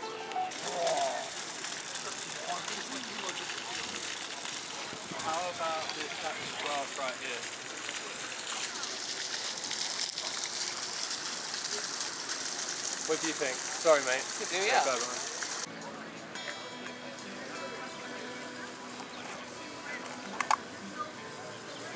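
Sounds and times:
faint voices: 0:00.0 - 0:21.9
fountain water splashing: 0:00.4 - 0:15.7, 0:17.1 - 0:21.9.

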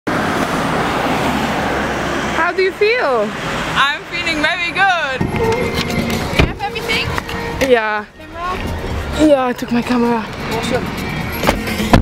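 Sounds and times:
road traffic passing: 0:00.1 - 0:12.0.

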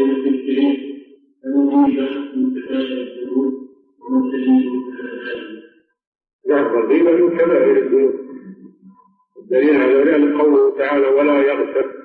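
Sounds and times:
man speaking: 0:00.0 - 0:05.6, 0:06.5 - 0:08.8, 0:09.4 - 0:12.0.

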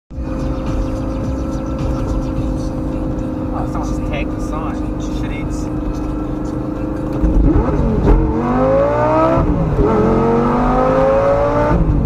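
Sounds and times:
car engine cruising: 0:00.1 - 0:12.0
wind and road rumble: 0:00.2 - 0:12.0
man speaking: 0:03.6 - 0:06.2.

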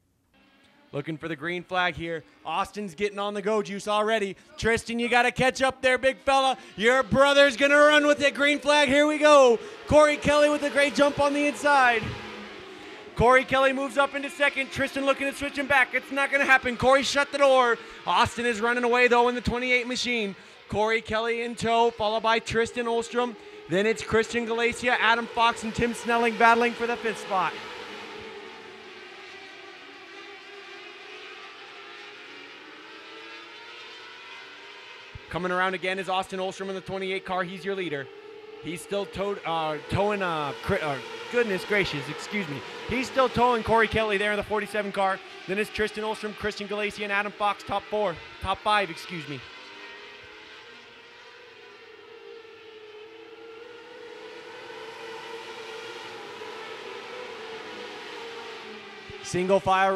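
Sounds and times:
racing car engines droning: 0:00.3 - 0:59.9.

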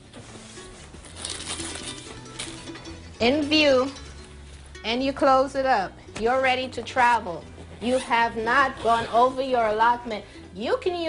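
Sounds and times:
quiet background music: 0:00.0 - 0:11.0
bag rustling and crinkling: 0:00.1 - 0:02.9.

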